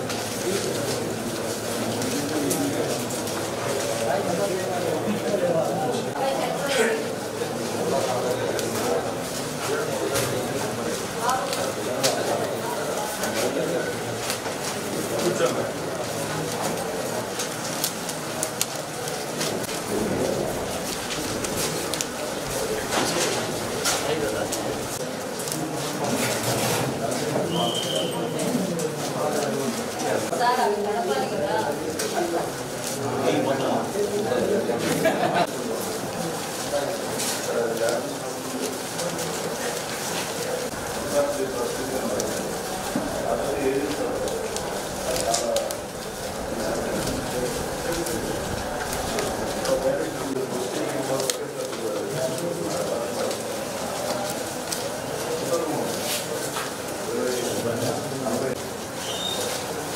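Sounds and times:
murmur of voices: 0:00.0 - 0:59.9
paper slips rustling: 0:35.8 - 0:57.6.

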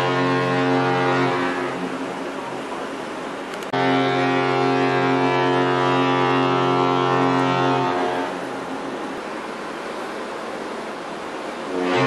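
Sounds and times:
ship fog horn blast: 0:00.0 - 0:02.2, 0:03.7 - 0:09.2, 0:11.6 - 0:12.0.

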